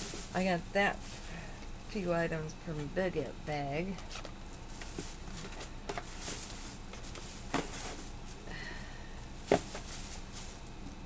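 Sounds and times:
packaging rustling: 4.1s - 8.4s.

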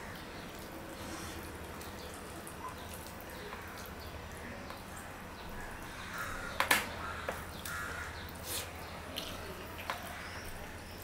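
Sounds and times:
crow cawing: 5.9s - 8.2s.

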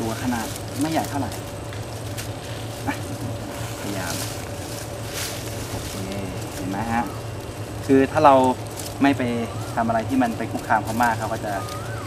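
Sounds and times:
soft rustles: 0.0s - 7.6s
steady low hum: 0.0s - 12.0s.

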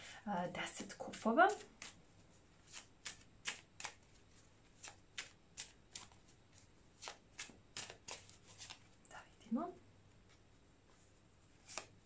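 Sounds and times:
cards shuffled by hand: 1.1s - 9.0s, 11.5s - 12.0s.

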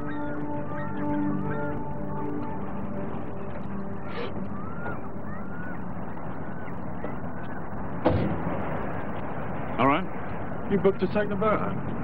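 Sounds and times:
high gliding cries: 0.0s - 8.0s.

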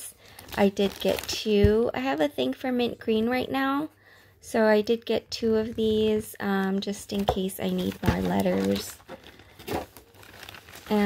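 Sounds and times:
plastic packaging crinkling: 0.0s - 1.9s, 6.0s - 11.0s.

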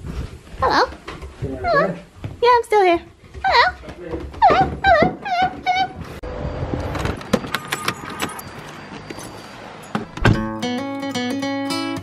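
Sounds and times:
car keys jangling: 7.2s - 10.4s.

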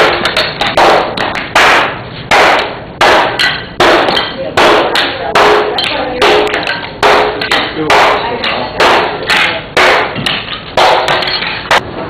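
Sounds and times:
hard blows cracking ceramic mold: 0.0s - 11.9s.

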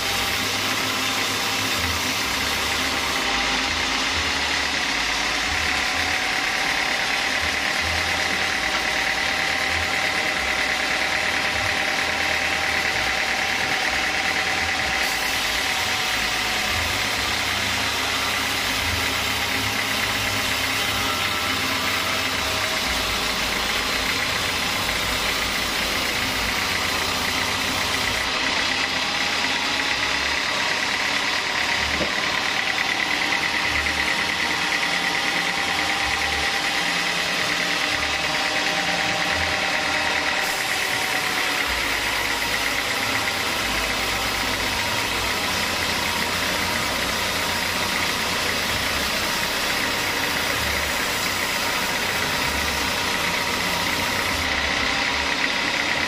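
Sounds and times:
band saw cutting through log: 0.0s - 56.0s
high machine whine: 0.0s - 56.0s.

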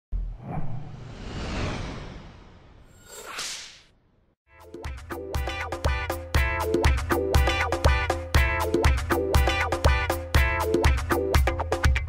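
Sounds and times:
rushing swoosh: 0.3s - 3.9s
sharp swish: 0.4s - 3.9s.

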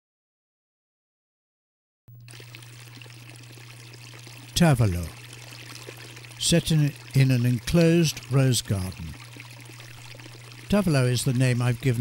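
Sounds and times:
fountain water pouring: 2.1s - 12.0s.

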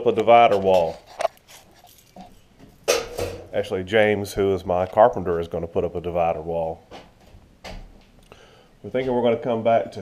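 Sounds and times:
man talking: 0.0s - 1.1s, 3.5s - 6.8s, 8.8s - 10.0s
small soft noises: 0.0s - 10.0s.

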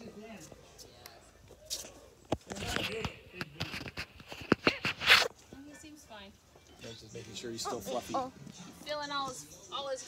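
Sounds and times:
clicks and knocks on microphone: 2.3s - 5.3s
rustling scrape: 3.6s - 5.4s.

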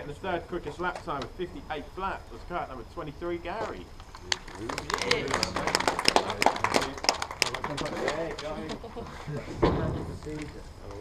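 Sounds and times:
voices: 0.0s - 11.0s
group clapping and cheering: 4.3s - 8.8s
heavy thump: 9.5s - 10.4s.

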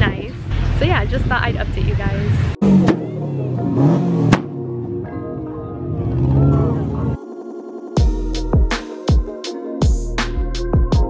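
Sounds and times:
crowd voices: 2.1s - 7.2s.

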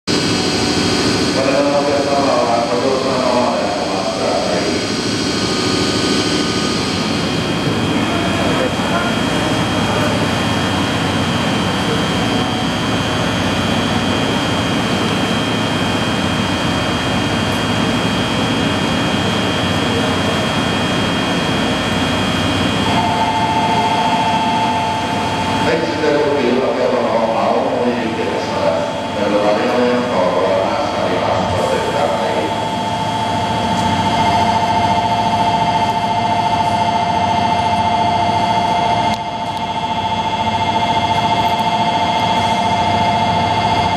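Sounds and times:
electric locomotive running: 0.1s - 43.9s
high steady tone: 0.1s - 43.9s
voices: 7.8s - 12.5s, 25.6s - 32.6s
two-note tone: 22.8s - 25.6s.

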